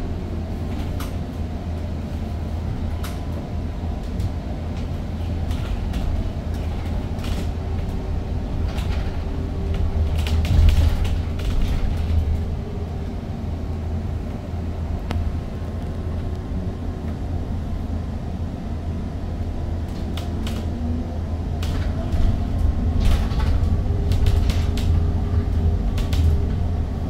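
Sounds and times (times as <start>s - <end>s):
bus road and drive rumble: 0.0s - 27.0s
rattles and clicks: 4.0s - 8.0s, 8.6s - 12.5s, 19.9s - 20.7s, 21.6s - 26.6s.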